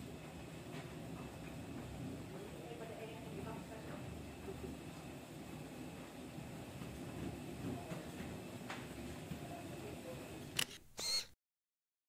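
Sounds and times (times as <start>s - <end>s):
low hum of people walking: 0.0s - 10.7s
camera shutter sound effect: 10.5s - 11.4s.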